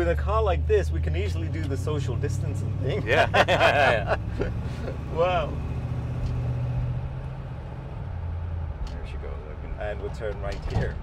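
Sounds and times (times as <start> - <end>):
car engine drone inside cabin: 0.0 - 10.5.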